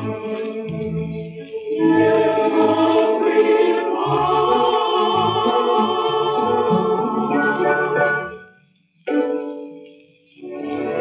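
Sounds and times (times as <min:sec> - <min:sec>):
orchestral chords: 0:03.2 - 0:08.5.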